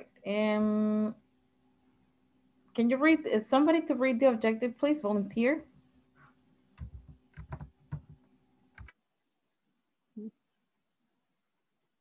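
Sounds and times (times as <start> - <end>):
soft keyboard clicks: 6.8 - 8.2, 8.8 - 9.0.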